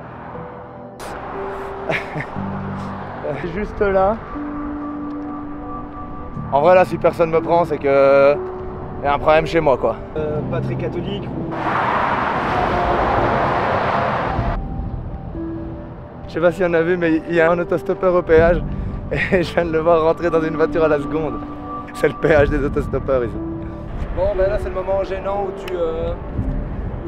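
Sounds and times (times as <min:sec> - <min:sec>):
background music with held notes: 0:00.0 - 0:11.6, 0:14.3 - 0:27.0
lorry traffic rushing: 0:00.0 - 0:18.3
traffic rumble: 0:00.0 - 0:27.0.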